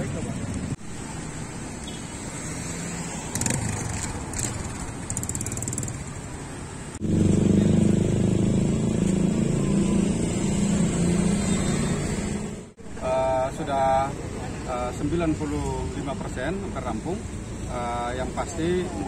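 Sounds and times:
street traffic: 0:00.0 - 0:19.0.

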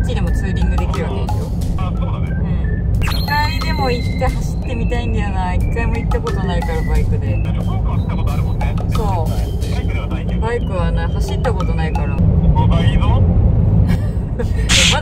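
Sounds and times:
music: 0:00.0 - 0:12.2
steady low rumble: 0:00.0 - 0:15.0
voices: 0:03.1 - 0:13.1, 0:14.7 - 0:15.0.

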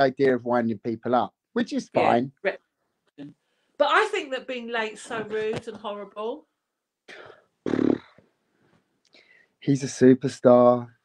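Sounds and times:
person breathing softly: 0:08.6 - 0:09.6.

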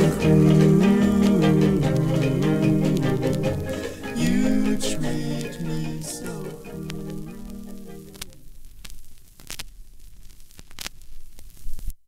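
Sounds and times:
last note of song: 0:00.0 - 0:08.4
vinyl crackle and hum: 0:00.0 - 0:12.0
vinyl pops: 0:00.0 - 0:12.0
vinyl record clicks: 0:00.0 - 0:12.0.

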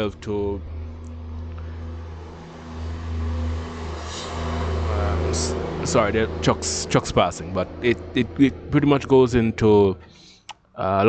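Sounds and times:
trucks passing: 0:00.0 - 0:10.5.

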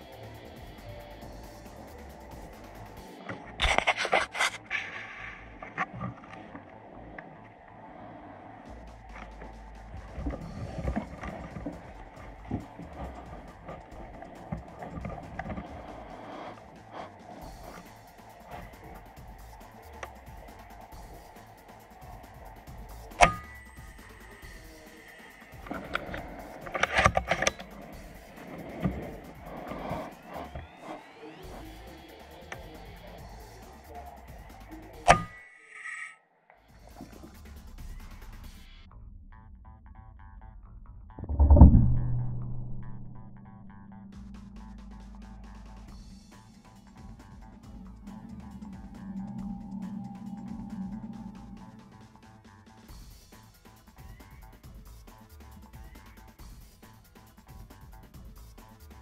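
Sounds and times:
background music: 0:00.0 - 0:05.8, 0:06.8 - 0:35.4, 0:41.2 - 0:59.0.

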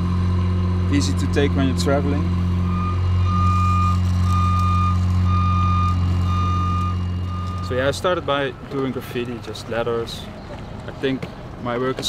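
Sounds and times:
lift motion alarm beeping: 0:02.6 - 0:08.8.

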